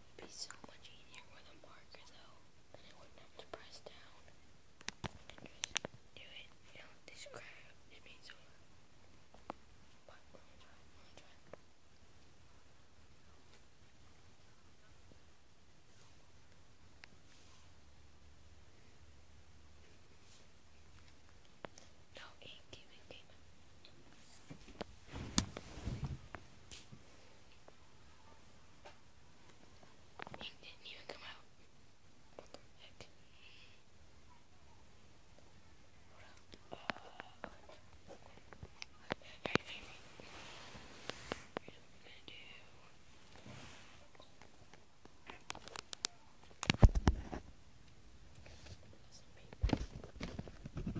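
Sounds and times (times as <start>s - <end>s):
faint whispering: 0.2s - 4.4s, 5.2s - 8.6s, 10.0s - 11.6s, 21.8s - 24.1s, 30.2s - 31.5s, 32.2s - 44.3s, 48.4s - 49.6s.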